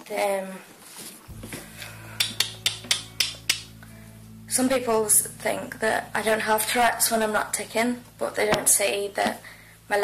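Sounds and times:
steady low hum: 1.3s - 10.0s.

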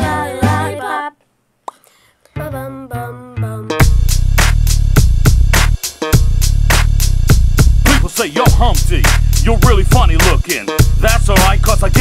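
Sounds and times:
person singing: 0.0s - 1.2s, 2.4s - 3.8s
backing track with deep bass beat: 3.8s - 12.0s.

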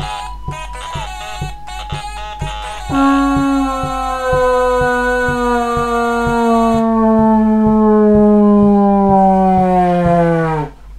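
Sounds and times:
toy trombone sliding note: 0.0s - 7.0s.

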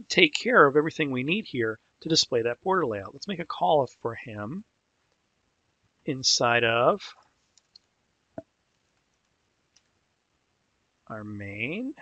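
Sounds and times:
keyboard and mouse clicks: 7.5s - 7.9s.

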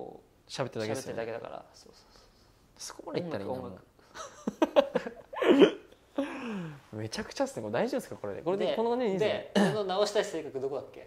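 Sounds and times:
men laughing: 4.1s - 6.6s.

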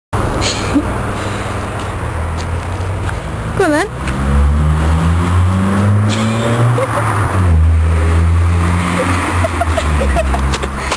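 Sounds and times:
engine running: 0.2s - 10.9s.

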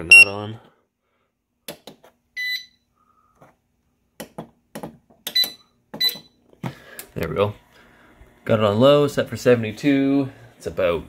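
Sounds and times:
control panel beeping: 0.0s - 0.3s.

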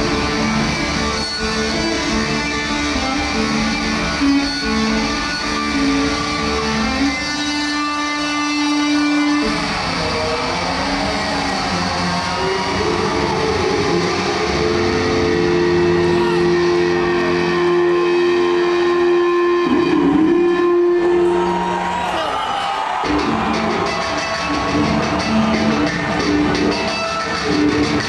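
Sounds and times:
distorted electric guitar solo: 0.0s - 22.0s, 22.9s - 28.0s.

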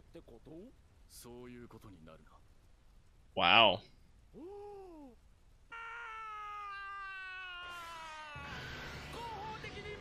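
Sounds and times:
cartoon voice shouting woohoo: 4.4s - 8.7s
long drawn-out hoo: 4.4s - 9.4s.

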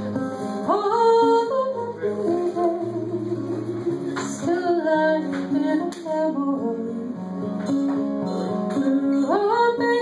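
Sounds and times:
acoustic guitar: 0.0s - 10.0s
woman singing: 0.1s - 7.5s, 8.5s - 10.0s.

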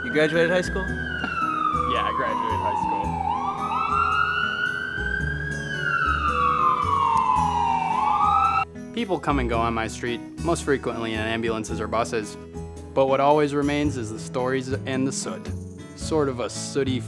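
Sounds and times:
emergency siren wailing: 0.0s - 8.7s.

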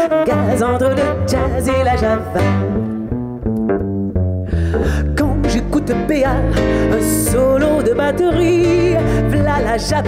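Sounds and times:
person singing: 0.0s - 2.9s, 4.7s - 10.0s
jazz band playing: 0.0s - 4.3s
plucked double bass notes: 0.2s - 10.0s.

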